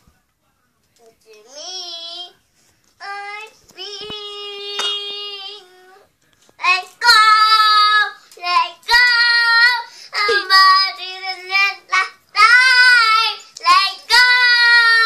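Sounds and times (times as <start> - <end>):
girl singing: 1.0 - 2.4, 3.0 - 15.0.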